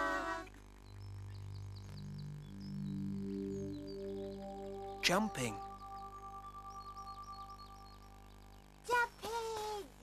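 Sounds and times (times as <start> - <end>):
slow music of low held notes: 0.0 - 8.8
faint bird chirps: 0.0 - 9.9.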